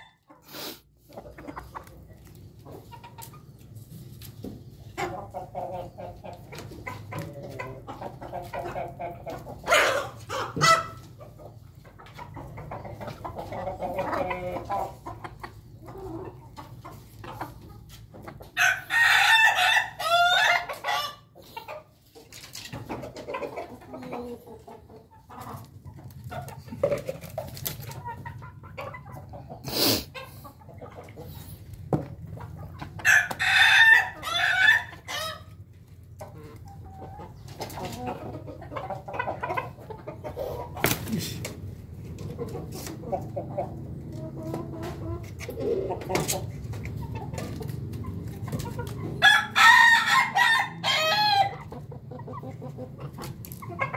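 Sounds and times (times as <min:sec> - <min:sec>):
chicken clucking: 0:00.0 - 0:53.9
rooster crowing: 0:49.2 - 0:51.5.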